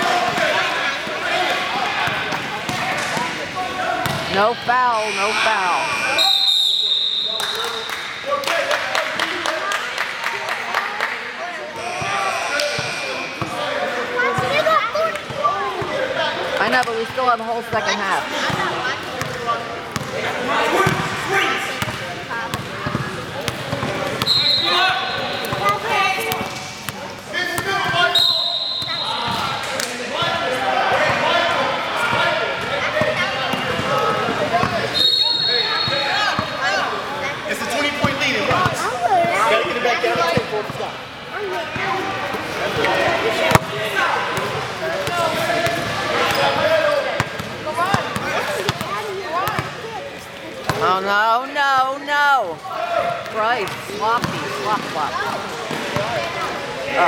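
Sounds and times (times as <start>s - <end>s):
chatter and shouts: 0.0s - 57.0s
referee whistle blasts: 4.9s - 7.9s, 24.2s - 24.8s, 28.1s - 29.2s, 34.9s - 36.1s.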